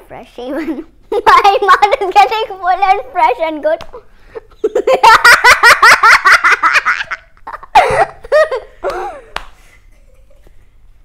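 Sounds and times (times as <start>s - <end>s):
boy laughing: 4.3s - 10.5s.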